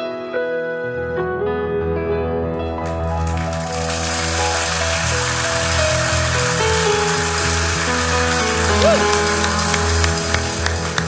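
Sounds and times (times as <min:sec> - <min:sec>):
sustained keyboard chords: 0:00.0 - 0:11.0.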